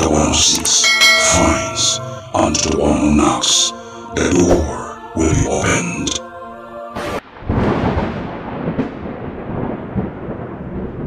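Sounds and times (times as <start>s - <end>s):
thunder crack: 7.0s - 11.0s
rolling thunder rumble: 7.2s - 11.0s.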